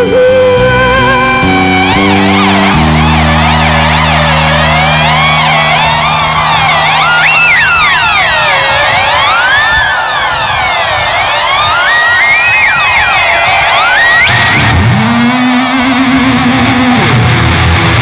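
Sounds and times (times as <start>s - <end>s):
electric guitar siren-like glides: 0.0s - 18.0s
held low bass note: 0.4s - 9.1s.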